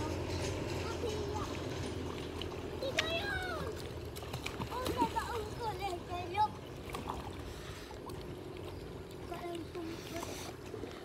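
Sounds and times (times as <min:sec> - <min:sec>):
light water splashing: 0:00.0 - 0:11.0.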